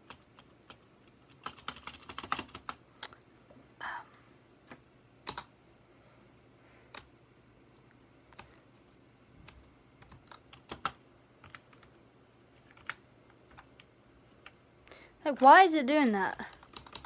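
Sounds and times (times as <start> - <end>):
computer keyboard typing: 0.0 - 2.8, 5.2 - 5.5, 6.9 - 7.1, 9.4 - 12.0, 12.6 - 14.6, 16.4 - 17.0.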